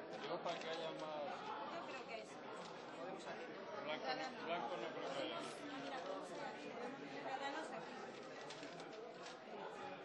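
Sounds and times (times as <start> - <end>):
indistinct chatter: 0.0 - 10.0
paper rustling: 8.1 - 9.4.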